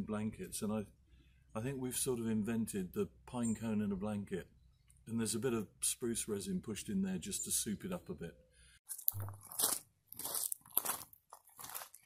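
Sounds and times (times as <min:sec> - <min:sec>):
footsteps crunching on wood chips: 0:08.9 - 0:12.0.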